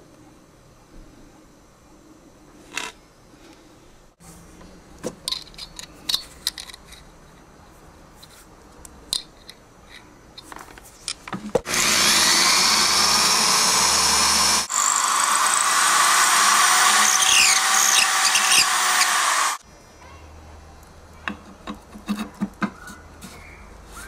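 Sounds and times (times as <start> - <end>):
cordless drill boring wood: 11.6 - 19.6.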